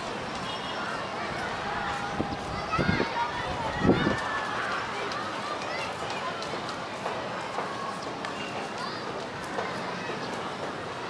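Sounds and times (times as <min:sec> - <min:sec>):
city background noise: 0:00.0 - 0:11.0.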